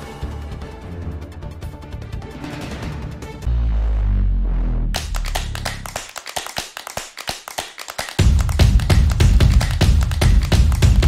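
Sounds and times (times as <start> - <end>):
electronic theme music: 0.0 - 6.5, 8.2 - 11.0
heavy pulsing bass: 3.5 - 6.0.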